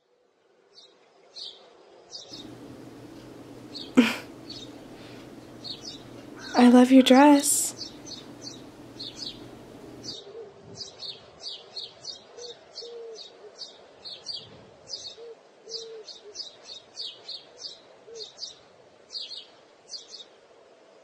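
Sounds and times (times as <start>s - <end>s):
birds chirping: 2.3s - 10.2s
short low bird notes: 2.4s - 6.6s, 7.7s - 10.1s.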